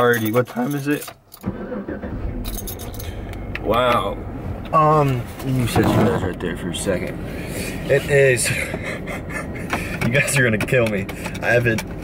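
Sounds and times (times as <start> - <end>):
car engine starting and running: 0.9 - 12.0
keys jangling: 2.4 - 3.3.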